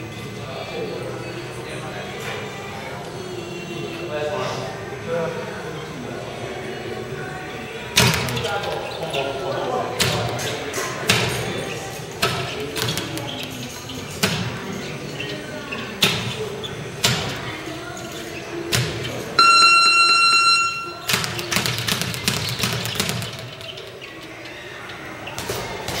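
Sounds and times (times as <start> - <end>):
steady electronic beep: 19.4 - 21.1.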